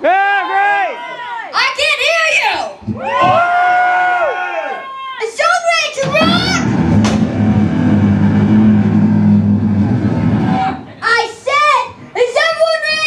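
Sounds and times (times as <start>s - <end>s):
high yells gliding down: 5.9s - 11.2s
low drone of amplified instruments: 6.1s - 11.0s.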